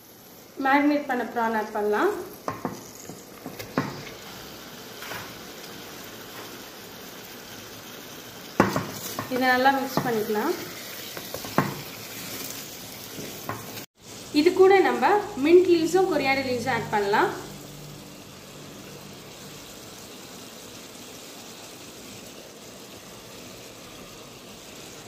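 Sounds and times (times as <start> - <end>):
prawns sizzling in a pot: 0.0 - 25.0.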